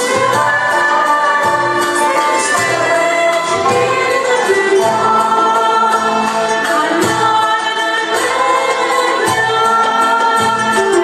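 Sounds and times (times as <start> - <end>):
women's choir singing: 0.0 - 11.0.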